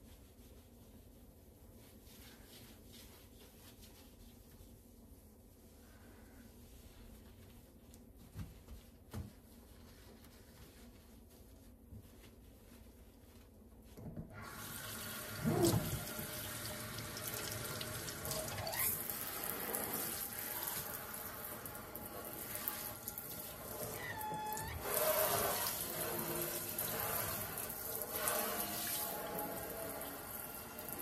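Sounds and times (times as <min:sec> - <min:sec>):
water running into metal sink: 0:14.4 - 0:31.0
short squeaks: 0:23.9 - 0:25.0.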